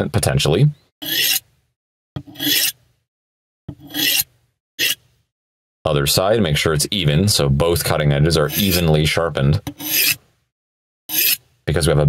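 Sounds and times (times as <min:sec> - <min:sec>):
knife scraping on ceramic: 0:01.0 - 0:01.4, 0:02.2 - 0:02.8, 0:03.7 - 0:05.0, 0:08.4 - 0:09.0, 0:09.7 - 0:10.2, 0:11.1 - 0:11.4.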